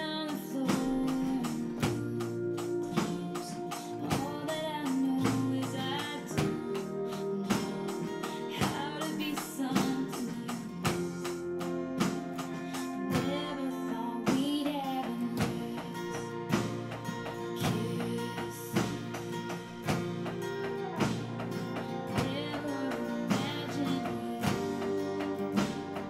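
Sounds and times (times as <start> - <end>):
person singing: 0.0 - 26.0
strummed acoustic guitar: 0.0 - 26.0
drums and cymbals: 0.2 - 26.0.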